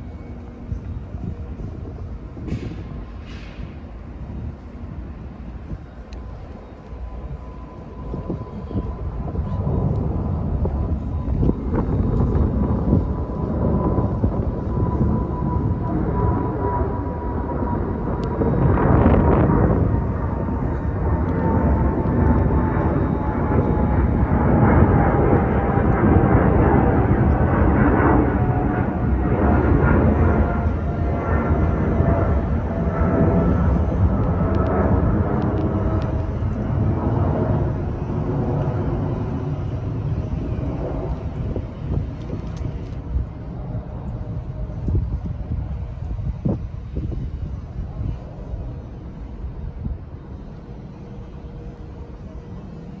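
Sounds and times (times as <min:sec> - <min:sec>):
jet airliner passing overhead: 0:00.0 - 0:53.0.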